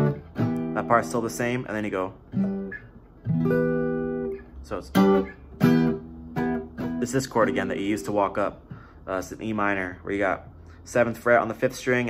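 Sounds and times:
acoustic guitar chords: 0.0s - 9.7s.

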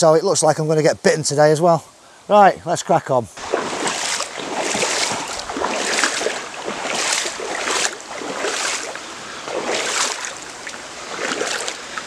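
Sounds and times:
legs wading through river water: 3.4s - 12.0s.

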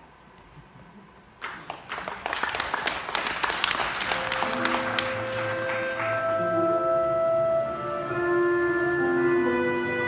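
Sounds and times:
audience applauding: 1.4s - 6.7s
grand piano playing: 3.4s - 10.0s.

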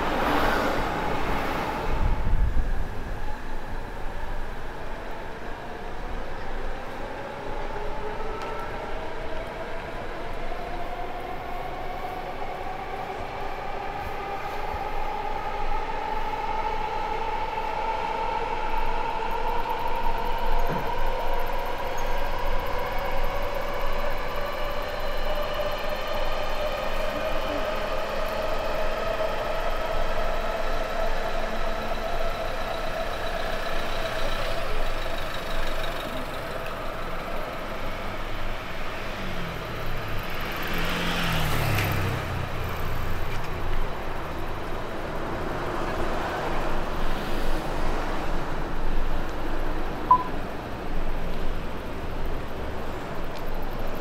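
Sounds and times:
city street traffic: 0.0s - 54.0s
electric train motors whining: 10.3s - 38.8s.

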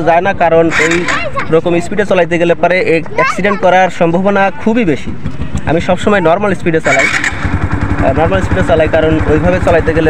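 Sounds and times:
motorcycle engine idling: 0.0s - 3.0s, 3.7s - 10.0s
engine starter whir: 0.7s - 1.2s, 6.8s - 10.0s.

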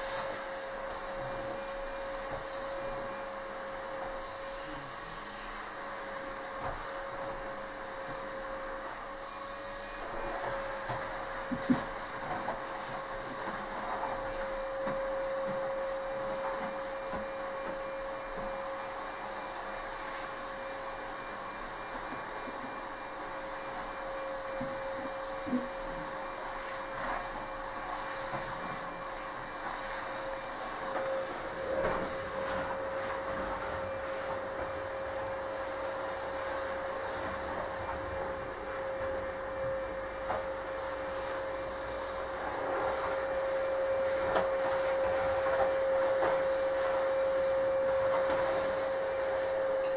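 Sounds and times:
machine high-pitched whine: 0.0s - 49.9s.

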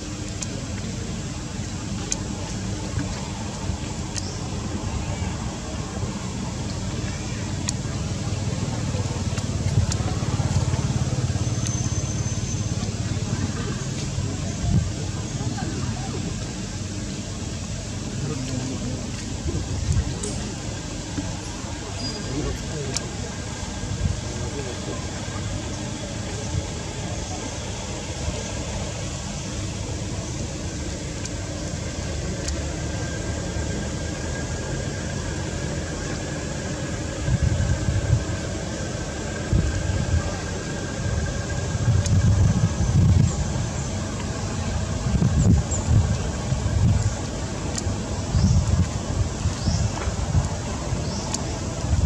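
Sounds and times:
wind gusts on microphone: 37.0s - 52.0s.

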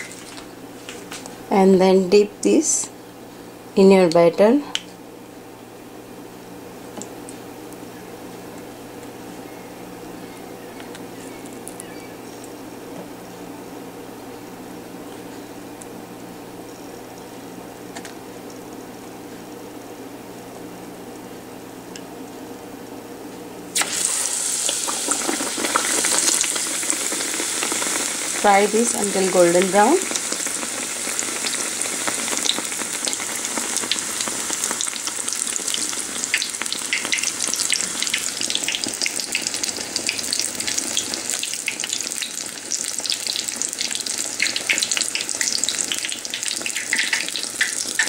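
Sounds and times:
eggplant frying in hot oil: 23.8s - 48.0s.

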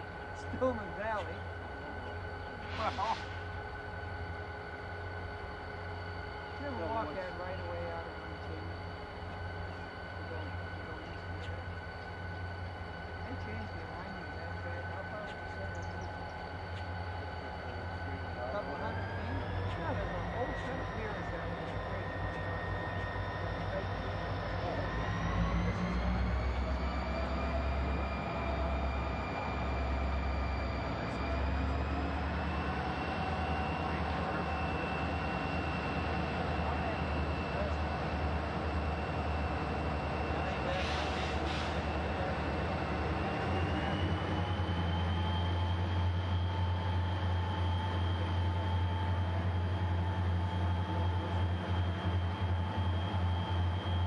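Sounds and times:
diesel locomotive engine rumbling: 0.0s - 54.0s.

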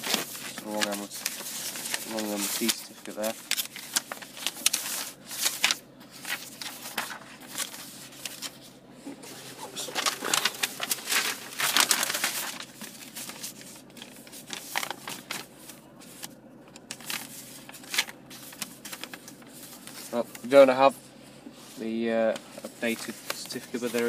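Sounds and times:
paper rustling and crinkling: 0.0s - 20.7s, 21.5s - 24.0s.

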